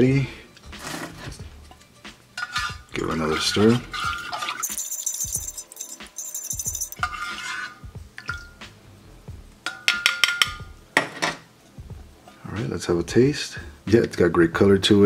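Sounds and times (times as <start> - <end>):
liquid swishing: 2.4 - 5.2, 6.9 - 7.8
metal cup ringing: 4.5 - 7.1
spoon clicking on metal cup: 4.6 - 7.1.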